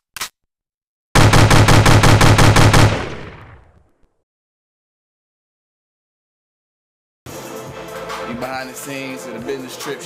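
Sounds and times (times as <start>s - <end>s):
automatic rifle fire: 1.2s - 3.8s
gunshot echo: 1.2s - 3.8s.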